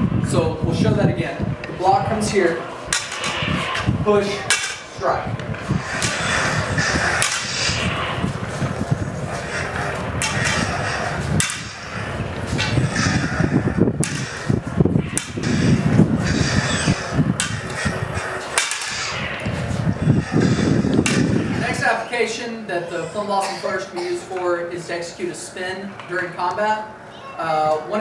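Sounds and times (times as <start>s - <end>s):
low rumble: 0.0s - 21.9s
prop lightsabers clacking: 2.8s - 21.9s.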